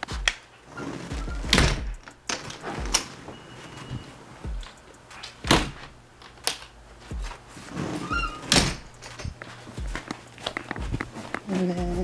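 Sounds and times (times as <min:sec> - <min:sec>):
soft thumps: 0:08.2 - 0:12.0.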